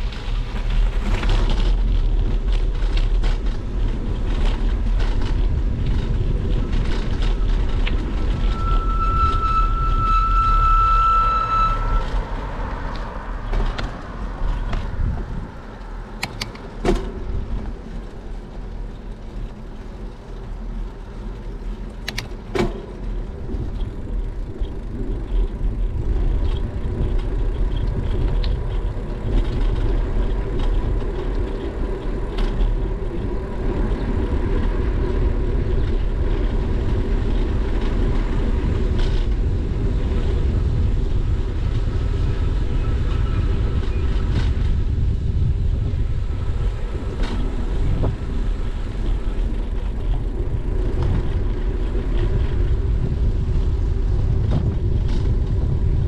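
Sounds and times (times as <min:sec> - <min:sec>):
bicycle tyres on asphalt: 0:00.0 - 0:56.0
wind rushing over microphone: 0:00.0 - 0:56.0
sharp clicks: 0:16.2 - 0:16.7, 0:22.0 - 0:22.4.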